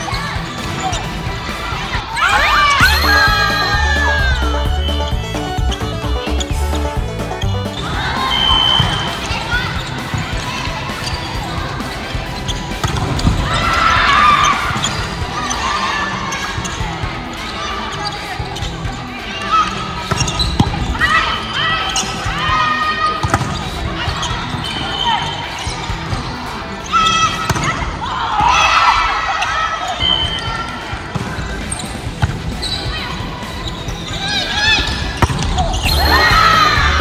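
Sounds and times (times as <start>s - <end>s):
players calling and shouting: 0.0s - 37.0s
crowd drawn-out ooh: 0.8s - 12.2s, 35.6s - 37.0s
volleyball hits: 23.2s - 25.3s, 34.8s - 37.0s.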